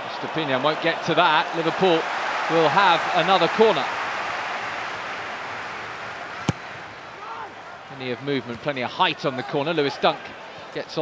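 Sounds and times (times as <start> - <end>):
stadium crowd hum: 0.0 - 11.0
ball kicked thud: 6.4 - 6.7.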